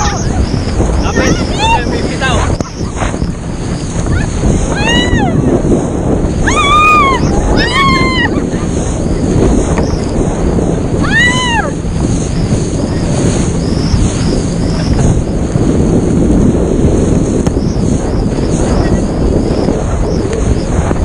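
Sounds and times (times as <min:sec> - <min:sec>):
water rushing under boat: 0:00.0 - 0:21.0
wind buffeting microphone: 0:00.0 - 0:21.0
person shrieking: 0:06.4 - 0:08.4.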